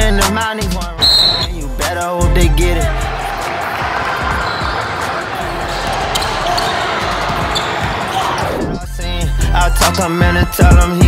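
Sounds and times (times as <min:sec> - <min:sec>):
backing music: 0:00.1 - 0:11.0
voices of players and onlookers: 0:02.7 - 0:08.9
basketball bouncing on court: 0:03.5 - 0:08.5.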